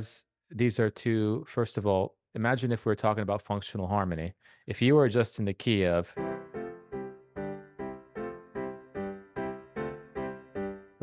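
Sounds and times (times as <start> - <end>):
piano playing single notes: 6.2 - 11.0.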